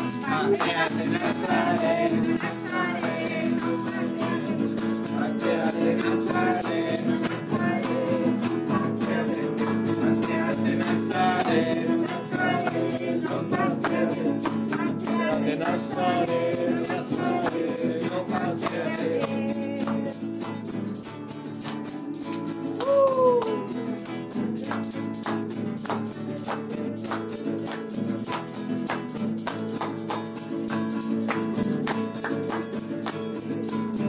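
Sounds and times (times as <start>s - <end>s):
group singing: 0.0s - 20.8s
hand clapping: 0.0s - 34.0s
tambourine jingles: 0.0s - 34.0s.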